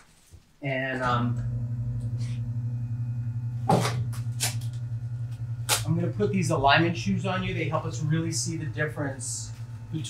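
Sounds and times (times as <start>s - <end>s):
low electrical hum: 0.1s - 10.0s.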